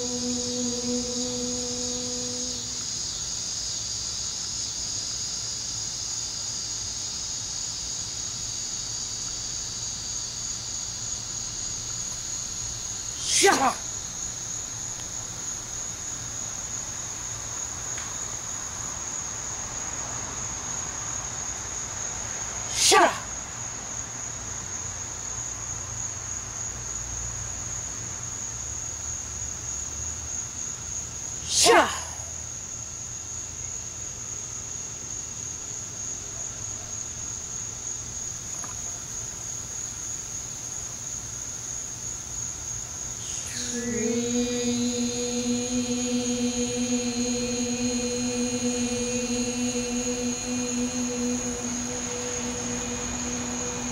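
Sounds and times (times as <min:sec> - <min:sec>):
faint low rumble: 0:00.0 - 0:03.0, 0:43.2 - 0:53.9
insects droning: 0:00.0 - 0:03.4, 0:10.2 - 0:17.7, 0:43.2 - 0:53.9.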